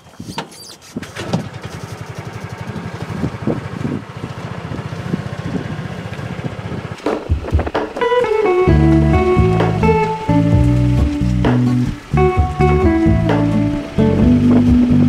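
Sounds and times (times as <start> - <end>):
small engine puttering: 0.2 - 15.0
knocks: 7.0 - 8.2.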